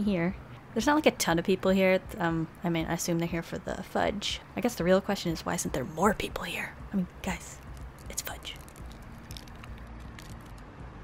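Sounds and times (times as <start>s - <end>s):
low steady background rumble: 0.0s - 11.0s
plastic wrapper crinkling: 7.6s - 10.6s.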